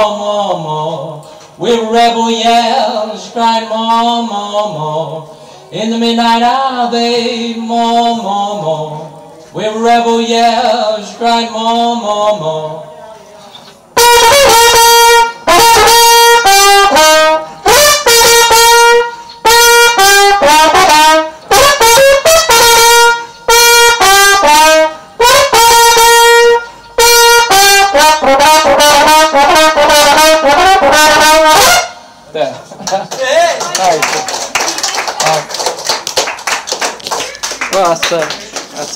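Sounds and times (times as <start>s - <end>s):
trumpet playing a melody: 14.0s - 32.2s
people talking: 32.4s - 35.6s, 37.1s - 38.9s.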